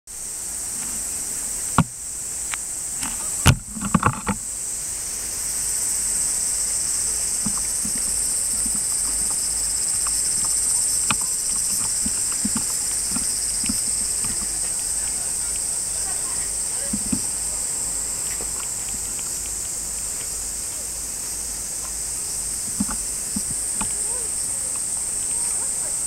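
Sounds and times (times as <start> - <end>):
insects singing: 0.2 - 26.0.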